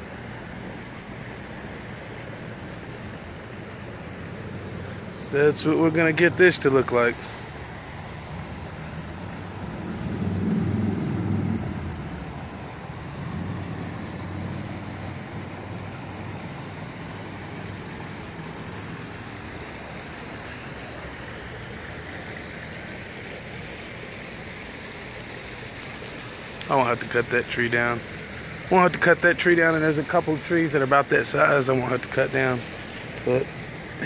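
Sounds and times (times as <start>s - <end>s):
steady outdoor hiss: 0.0s - 34.0s
water trickling from culvert: 0.0s - 34.0s
vehicle passing close by: 8.0s - 16.8s.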